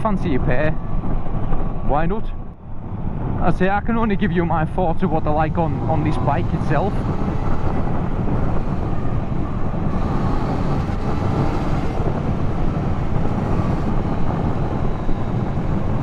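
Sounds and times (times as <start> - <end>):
wind and road noise: 0.0 - 16.0
motorcycle engine running: 5.2 - 16.0.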